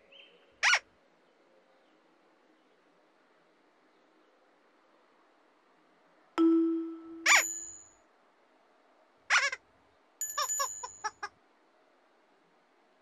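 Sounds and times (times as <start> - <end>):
toy-like musical effects: 6.4 - 7.8
high bell-like ring: 6.4 - 8.0, 10.2 - 11.1
ringing ding: 6.4 - 8.0, 10.2 - 11.1.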